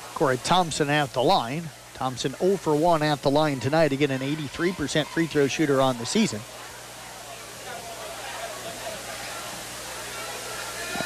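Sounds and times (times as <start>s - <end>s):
crowd murmuring: 0.0s - 11.0s.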